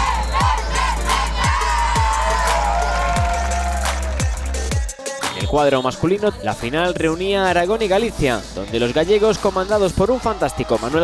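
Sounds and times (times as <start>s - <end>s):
group shouting and cheering: 0.0s - 5.2s
music with heavy kick drum: 0.0s - 5.6s.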